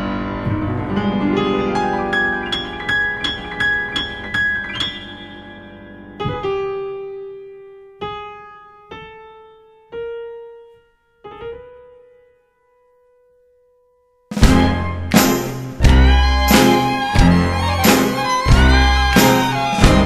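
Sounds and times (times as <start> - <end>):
piano playing: 0.0 - 20.0.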